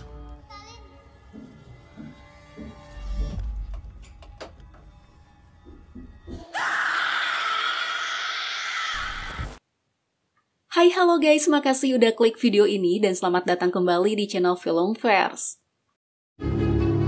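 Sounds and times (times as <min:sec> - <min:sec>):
long shrill scream: 0:06.4 - 0:09.6.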